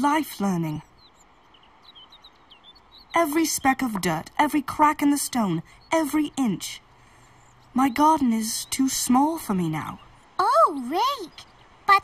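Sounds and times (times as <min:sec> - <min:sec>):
background hiss: 0:00.0 - 0:12.0
birds chirping: 0:00.0 - 0:12.0.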